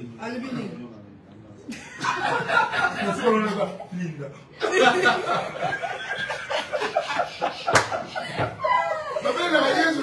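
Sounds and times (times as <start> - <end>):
people talking and chuckling: 1.5 - 10.0.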